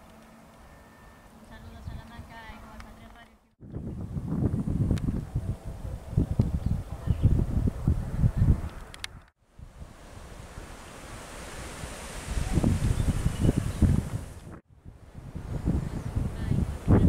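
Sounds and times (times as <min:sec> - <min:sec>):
wind buffeting microphone: 0:01.5 - 0:17.0.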